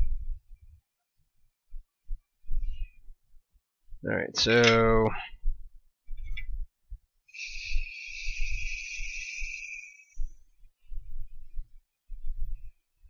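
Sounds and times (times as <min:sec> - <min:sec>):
hiss of blowing air: 0:07.3 - 0:10.2.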